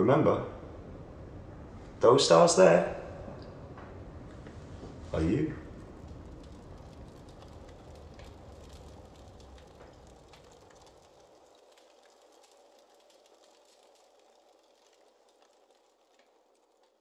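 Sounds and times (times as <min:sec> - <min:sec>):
faint hiss: 0:00.0 - 0:17.0
small crackles: 0:03.4 - 0:17.0.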